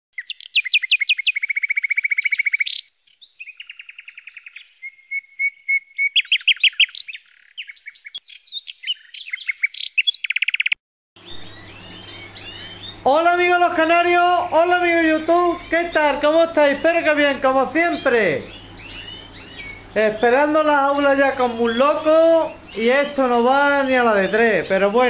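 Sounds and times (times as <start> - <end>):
canary singing trills: 0.1 - 25.0
caged birds chirping: 0.2 - 25.0.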